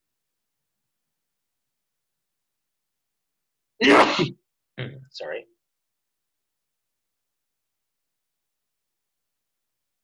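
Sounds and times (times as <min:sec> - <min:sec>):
person sneezing: 0:03.8 - 0:05.0.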